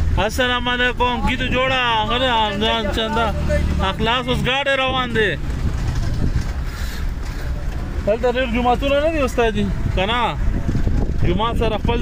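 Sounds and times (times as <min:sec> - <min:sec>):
man's voice: 0:00.0 - 0:05.5
car driving over dirt track: 0:01.4 - 0:08.2.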